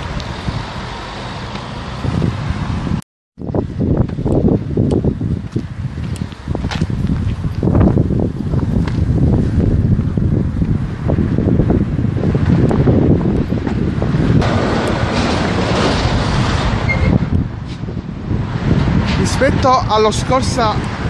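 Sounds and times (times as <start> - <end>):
wind buffeting a microphone: 0.0 - 21.0.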